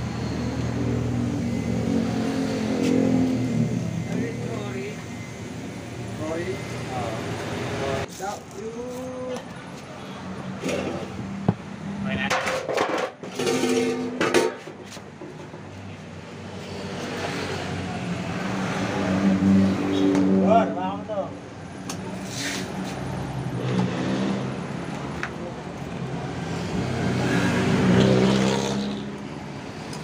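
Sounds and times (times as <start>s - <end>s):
motorcycle engine revving: 0.1s - 5.2s, 26.4s - 29.2s.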